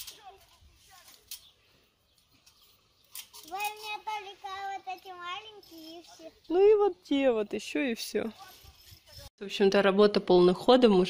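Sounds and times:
child's voice: 0.0s - 1.2s, 3.4s - 6.4s.

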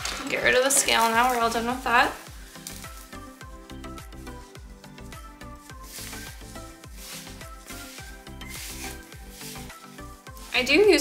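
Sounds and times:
gloved hands rubbing powder: 0.9s - 11.0s
music with steady beat: 2.2s - 11.0s.

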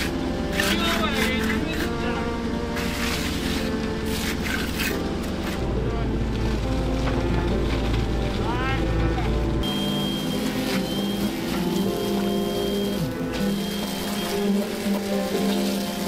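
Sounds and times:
background music: 0.0s - 16.0s
low machinery engine drone: 0.0s - 16.0s.

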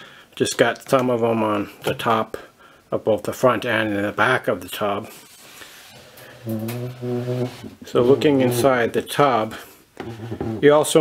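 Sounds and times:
man speaking: 6.5s - 9.6s.

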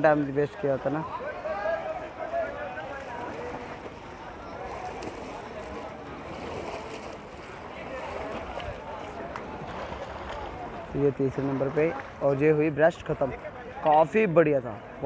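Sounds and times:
swimmers splashing: 0.0s - 14.0s
hubbub of spectators' voices: 0.0s - 15.0s.

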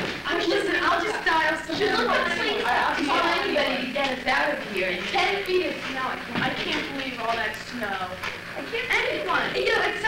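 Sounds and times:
young women talking: 0.2s - 10.0s.

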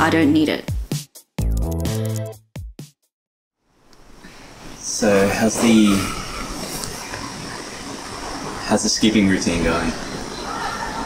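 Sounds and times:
even hiss: 3.9s - 11.0s.

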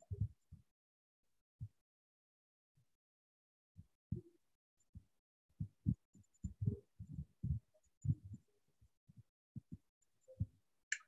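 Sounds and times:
faint soft low thumps: 5.6s - 8.4s.

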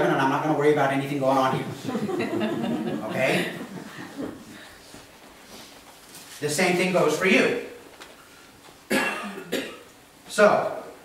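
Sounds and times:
person coughing: 8.9s - 9.9s.

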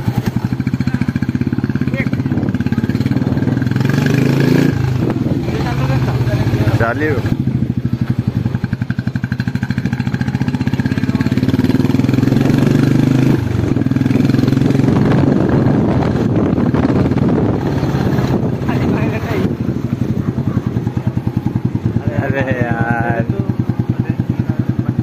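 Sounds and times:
motorcycle engine running: 0.0s - 25.0s.

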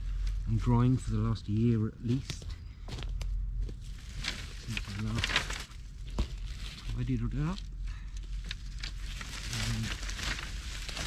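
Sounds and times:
dry leaves crackling: 0.0s - 1.2s, 3.6s - 11.0s
dry sticks knocking and scraping: 2.0s - 7.7s.

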